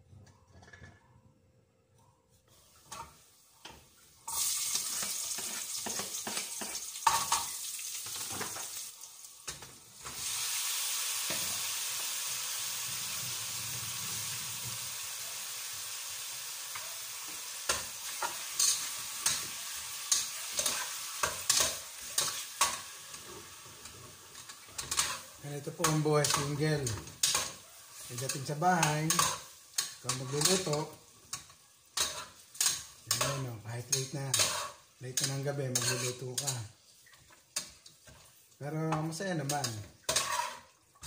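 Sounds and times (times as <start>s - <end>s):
food sizzling in hot oil: 2.6s - 41.0s
utensil scraping pot: 20.1s - 38.3s, 39.4s - 40.7s.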